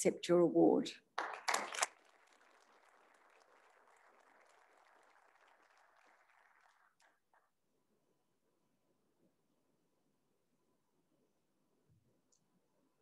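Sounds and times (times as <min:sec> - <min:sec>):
audience applause: 0:01.2 - 0:07.5.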